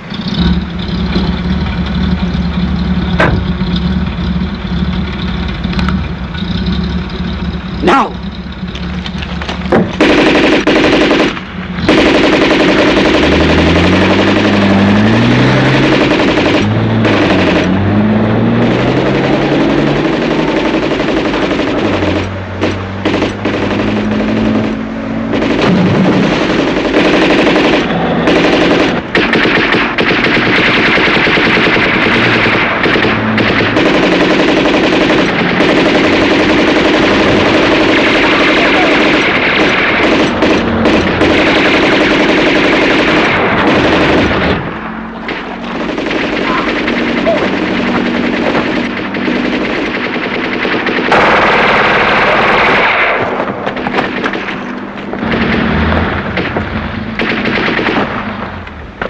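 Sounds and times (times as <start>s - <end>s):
vehicle engine revving: 0.0s - 59.0s
machine-gun fire: 9.3s - 58.6s.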